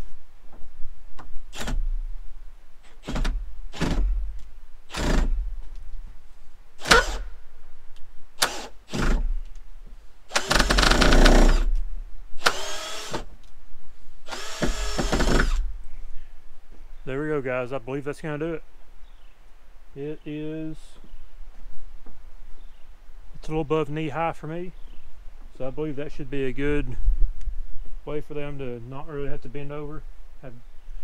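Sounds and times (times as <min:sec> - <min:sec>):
cordless drill driving screws: 0:04.9 - 0:05.4, 0:06.8 - 0:07.2, 0:08.4 - 0:09.3, 0:10.3 - 0:11.7, 0:12.4 - 0:13.3, 0:14.3 - 0:15.6.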